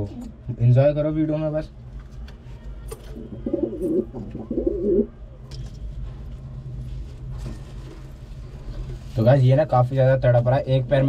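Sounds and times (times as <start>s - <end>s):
low background hum: 0.0s - 11.0s
pigeon cooing: 3.2s - 5.1s.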